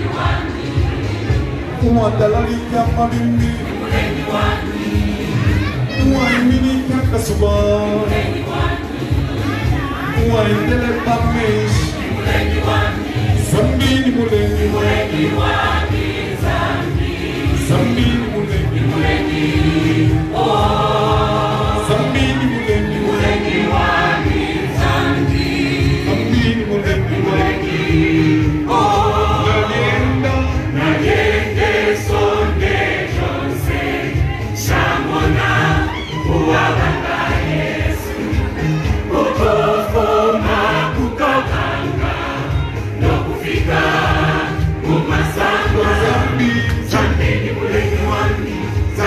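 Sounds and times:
choir singing gospel: 0:00.0 - 0:49.0.

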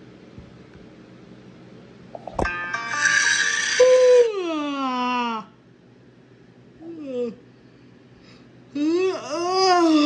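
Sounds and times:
bright chord-like jingle: 0:02.2 - 0:03.7.

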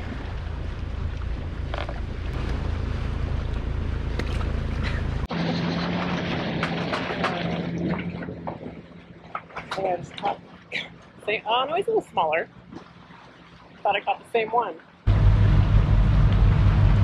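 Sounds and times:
steady low hum: 0:00.0 - 0:06.3, 0:15.1 - 0:17.0
sea noise: 0:00.0 - 0:17.0.

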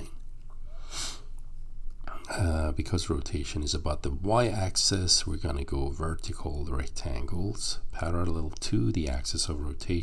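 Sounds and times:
nose sniff: 0:00.8 - 0:01.3.

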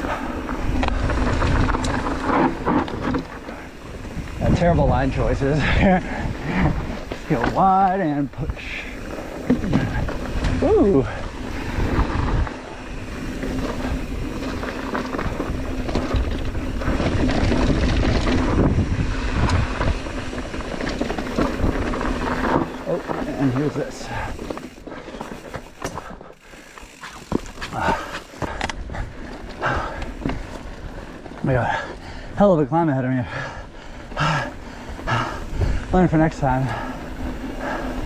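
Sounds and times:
bike rattling: 0:00.0 - 0:38.0
tyres rolling over dirt and rocks: 0:00.0 - 0:38.0
wind on microphone: 0:09.6 - 0:22.4
rider's voice or breathing: 0:23.8 - 0:30.6, 0:31.5 - 0:32.4, 0:33.1 - 0:38.0.

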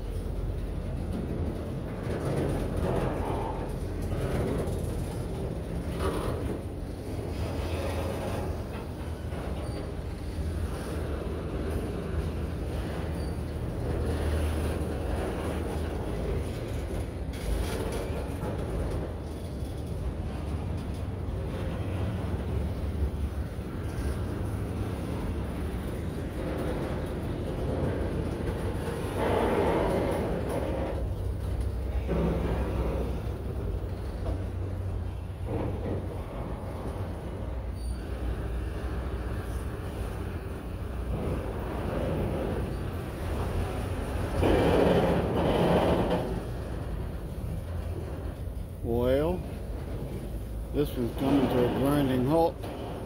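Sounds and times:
train wheels rumbling on rail: 0:00.0 - 0:53.0
train wheels squealing: 0:09.5 - 0:10.0, 0:13.0 - 0:13.6, 0:37.7 - 0:38.3.

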